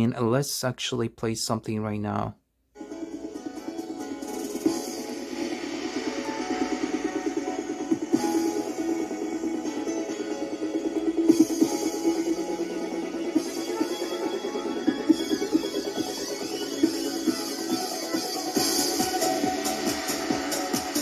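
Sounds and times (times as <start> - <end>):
music from small speakers: 2.8 - 21.0.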